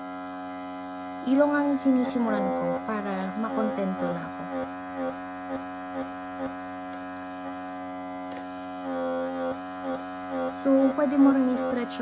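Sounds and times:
small suction pump humming: 0.0s - 12.0s.

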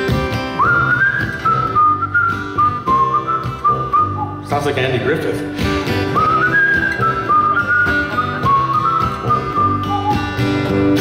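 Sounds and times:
strummed acoustic guitar: 0.0s - 11.0s
person whistling a melody: 0.5s - 4.5s, 6.1s - 10.6s.

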